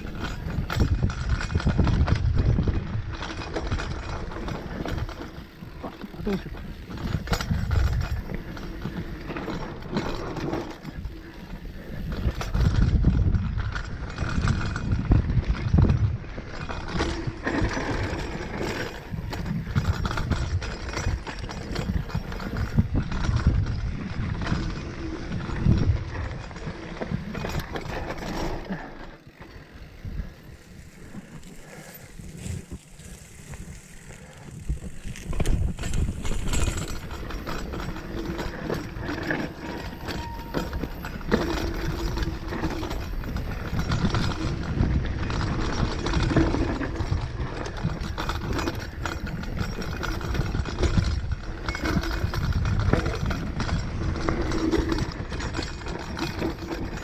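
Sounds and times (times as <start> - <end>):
bike rattling over roots and stones: 0.0 - 57.0
tyre rumble: 17.0 - 57.0.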